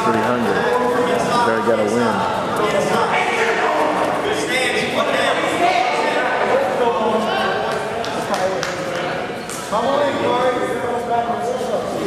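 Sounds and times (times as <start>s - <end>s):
voices echoing in a gymnasium: 0.0s - 12.0s.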